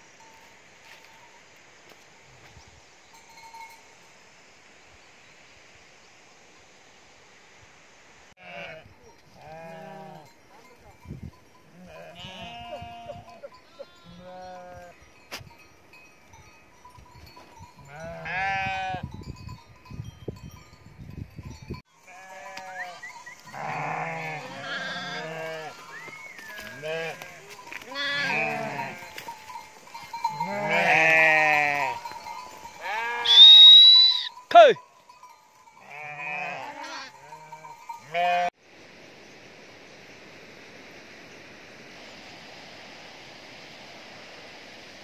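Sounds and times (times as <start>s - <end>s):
sheep bleating: 8.4s - 8.8s, 9.4s - 10.3s, 11.7s - 14.9s, 17.9s - 19.0s, 22.1s - 25.9s, 26.6s - 29.2s, 30.3s - 32.1s, 32.8s - 33.5s, 35.8s - 38.5s.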